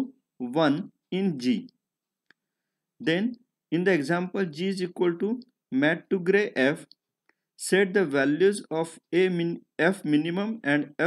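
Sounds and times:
narrating voice: 0.0 - 1.8, 3.0 - 6.9, 7.6 - 11.0.

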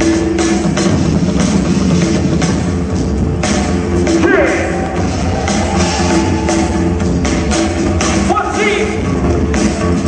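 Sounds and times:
music with drum beat and bass: 0.0 - 10.0.

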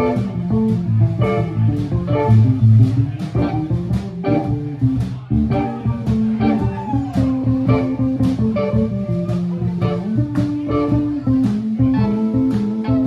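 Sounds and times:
drums: 0.0 - 13.0
electric bass: 0.0 - 13.0
electric guitars: 0.0 - 13.0.

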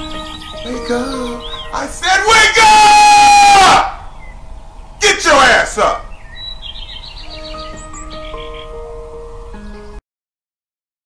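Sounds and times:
ringtone bird-like chirps: 0.0 - 2.0, 4.0 - 4.6, 6.0 - 10.0
sustained electronic notes: 0.0 - 10.0.

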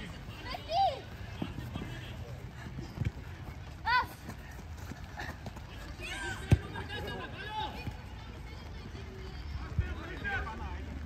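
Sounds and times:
child shouting: 3.8 - 4.2.

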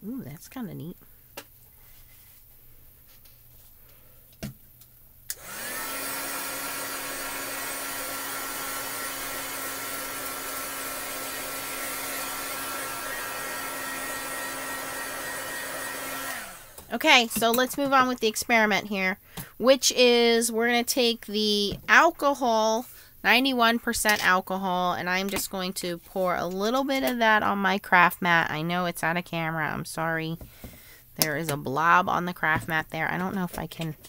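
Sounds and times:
heat tool whirring and humming: 5.3 - 17.7.

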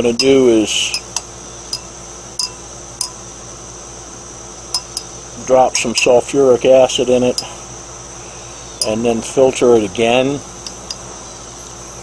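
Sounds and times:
glass rod clinking on beaker: 0.2 - 3.2, 4.7 - 5.1.

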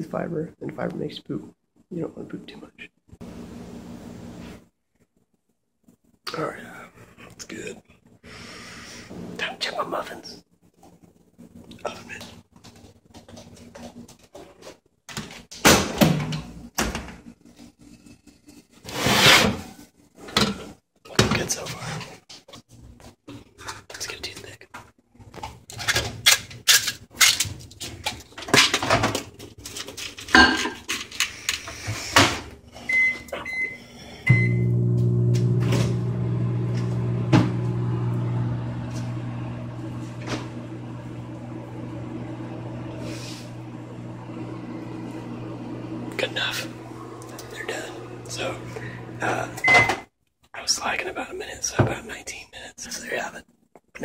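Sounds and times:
microwave electric hum: 3.2 - 4.7, 32.5 - 50.1.

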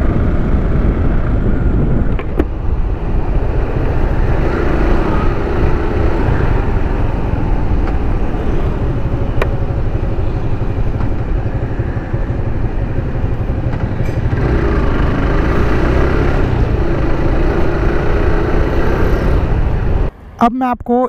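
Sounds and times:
motorcycle engine rumble: 0.0 - 20.1
road noise: 0.0 - 21.0.

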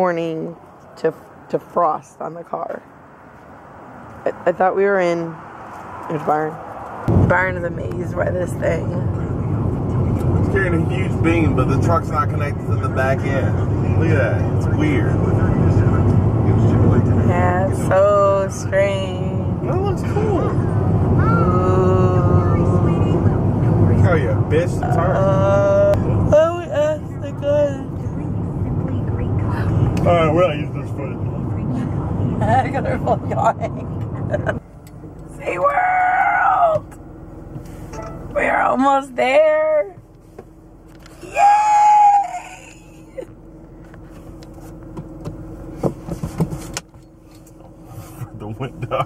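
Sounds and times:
car road and engine rumble: 0.0 - 49.0.

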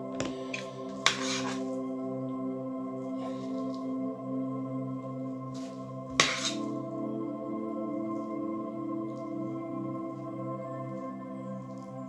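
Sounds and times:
slow ambient drone music: 0.0 - 12.0.

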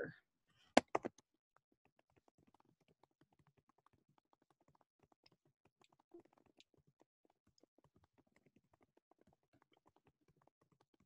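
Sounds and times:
faint irregular ticks: 0.6 - 11.0.

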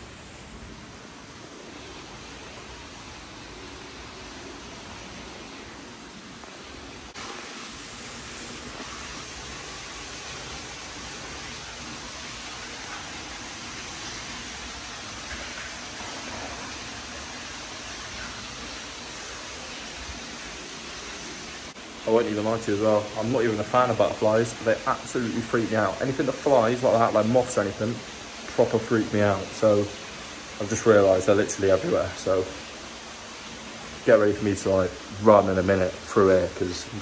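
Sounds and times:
steady rushing noise: 0.0 - 33.3.

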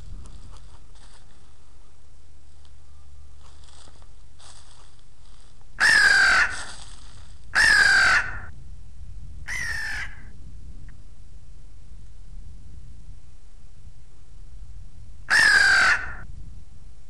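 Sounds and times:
crow cawing: 5.8 - 6.7, 7.6 - 8.5, 9.5 - 10.3, 15.3 - 16.2.

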